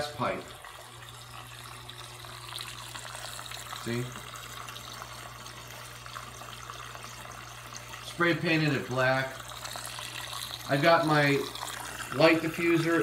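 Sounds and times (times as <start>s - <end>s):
water trickling in aquarium: 0.0s - 13.0s.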